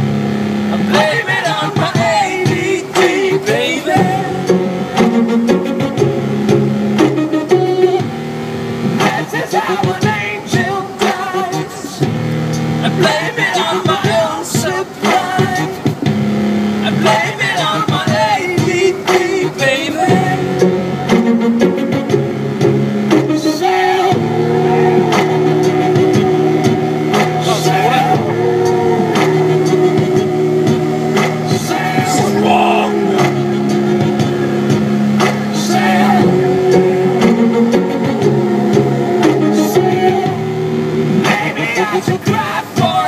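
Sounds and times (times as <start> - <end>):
music with sung melody: 0.0 - 43.0.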